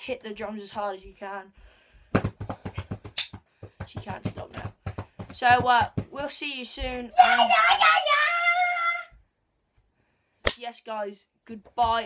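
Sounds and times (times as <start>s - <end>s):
drumsticks beating fast: 2.4s - 4.5s.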